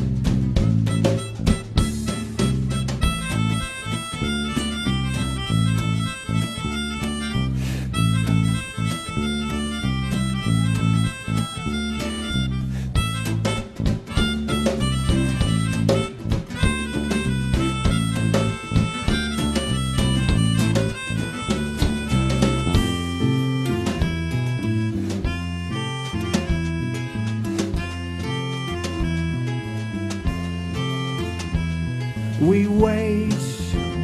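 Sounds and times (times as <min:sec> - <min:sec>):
acoustic guitar: 0:00.0 - 0:34.0
drum kit: 0:00.0 - 0:34.0
electric bass: 0:00.0 - 0:34.0
free-reed wind instrument melody: 0:00.0 - 0:34.0.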